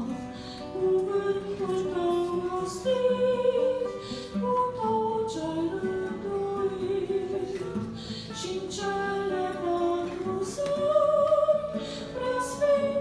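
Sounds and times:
guitar accompaniment: 0.0 - 13.0
woman singing into a microphone: 0.0 - 13.0.

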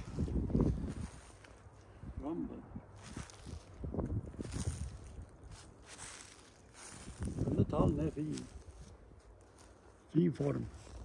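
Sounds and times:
wind rumbling on microphone: 0.0 - 9.2.

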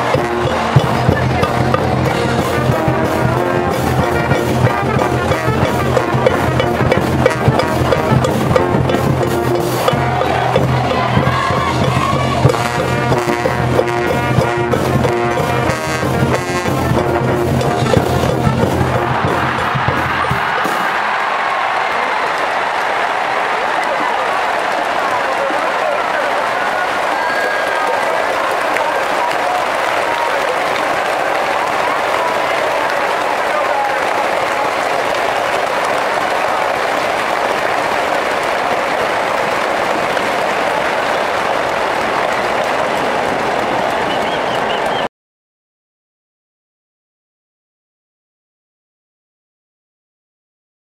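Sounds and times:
brass band music: 0.0 - 44.0
applause: 0.0 - 45.1
stadium crowd noise: 0.0 - 45.1.

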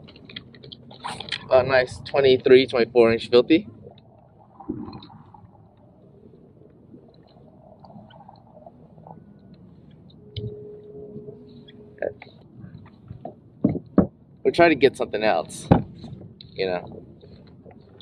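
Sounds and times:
faint steady hum: 0.0 - 18.0.

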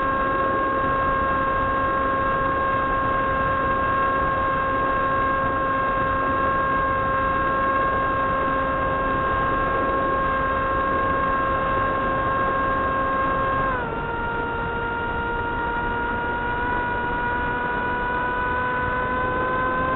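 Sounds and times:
electric motor and propeller whine: 0.0 - 19.9.

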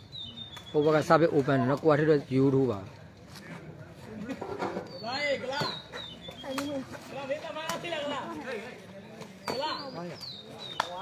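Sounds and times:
distant people talking and calling: 0.0 - 11.0.

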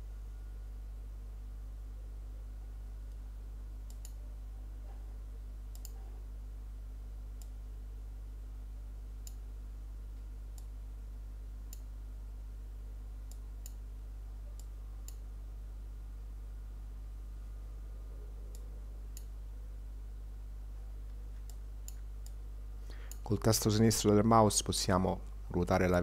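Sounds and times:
low electrical hum: 0.0 - 26.0
computer mouse clicking: 3.9 - 4.2, 5.7 - 6.0.

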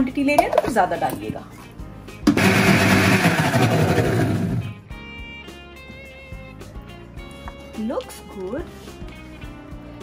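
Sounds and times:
electric blender running: 2.3 - 4.8.

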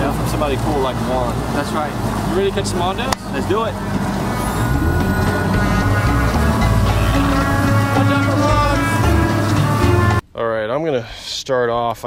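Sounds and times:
outboard motor running: 0.0 - 10.2
background music with held notes: 3.4 - 10.2.

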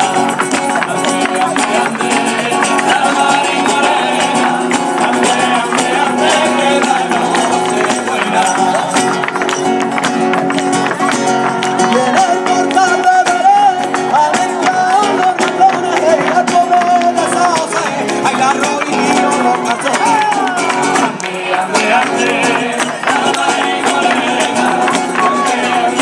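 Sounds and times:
acoustic guitar: 0.0 - 26.0.

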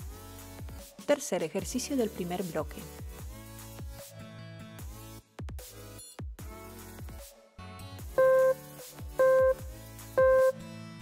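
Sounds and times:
countdown timer beeps: 8.2 - 8.6, 9.2 - 10.6
electronic music with falling sweeps: 8.2 - 8.6, 9.2 - 9.6, 10.2 - 10.6.

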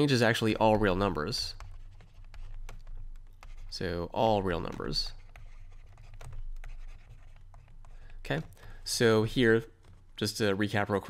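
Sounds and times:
stylus scratching on tablet: 0.2 - 10.4.

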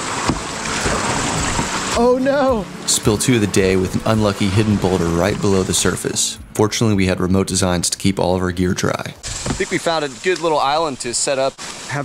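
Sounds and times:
river water rushing over rocks: 0.0 - 2.9.

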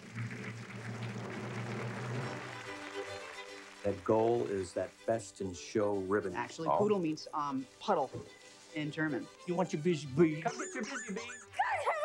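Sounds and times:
audience applauding: 0.0 - 6.7
low background music note: 0.7 - 11.5.

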